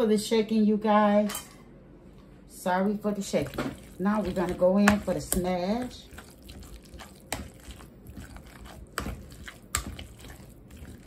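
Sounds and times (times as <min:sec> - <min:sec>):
potatoes squishing under masher: 0:02.8 - 0:11.0.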